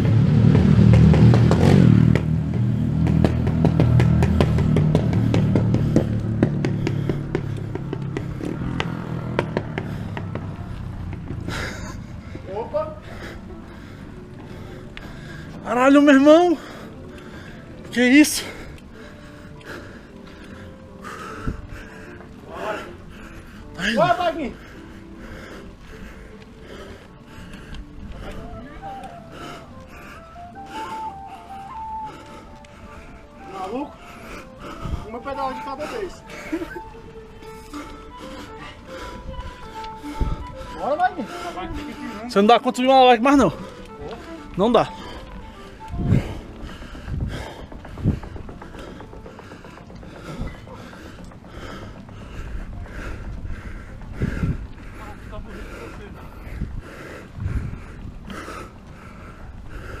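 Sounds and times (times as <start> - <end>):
bicycle chain and gears clicking: 0.0 - 60.0
person panting hard: 2.7 - 15.8, 16.5 - 42.5, 43.4 - 60.0
grunting breaths: 2.8 - 42.7, 43.3 - 60.0
faint music: 5.7 - 60.0.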